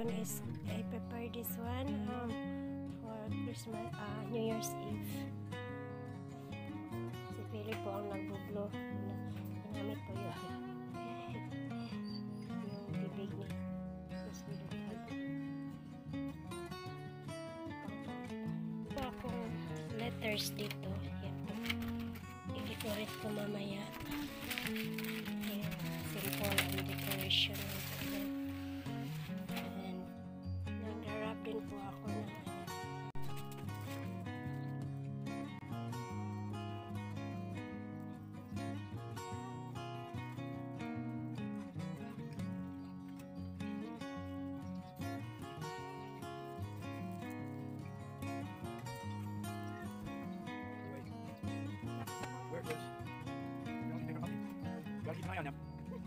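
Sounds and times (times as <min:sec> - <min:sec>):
background music held notes: 0:00.0 - 0:56.0.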